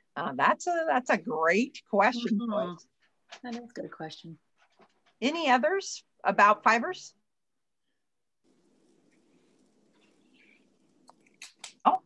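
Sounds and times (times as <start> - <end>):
faint small noises: 0.0 - 12.0.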